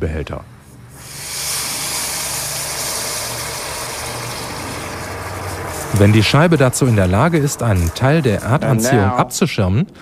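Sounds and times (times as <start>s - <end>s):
liquid nitrogen hissing: 0.6s - 9.8s.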